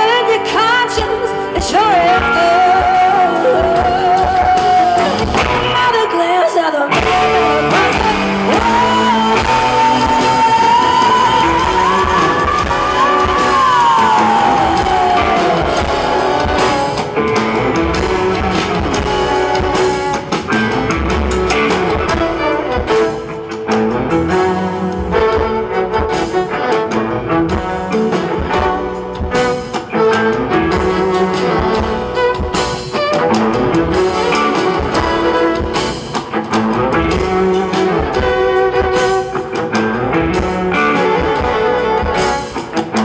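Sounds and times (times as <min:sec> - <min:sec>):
acoustic and electric guitars: 0:00.0 - 0:43.0
drums: 0:00.0 - 0:43.0.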